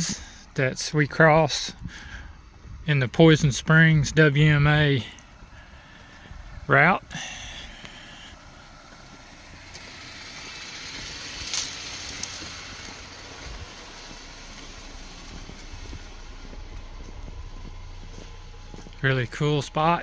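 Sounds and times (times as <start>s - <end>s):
vehicle rumbling on wooden bridge: 0.0s - 20.0s.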